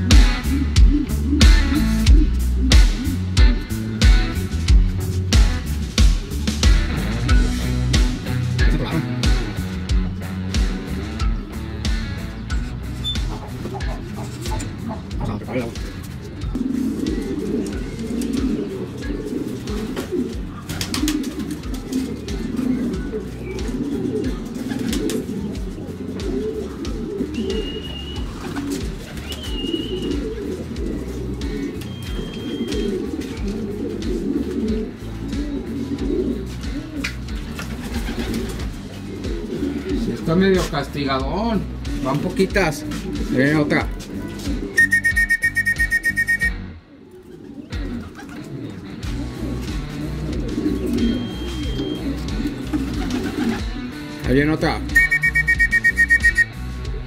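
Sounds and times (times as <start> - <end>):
pigeons cooing: 0.0 - 54.2, 54.9 - 57.0
short high whistles: 44.8 - 46.6, 55.0 - 56.5.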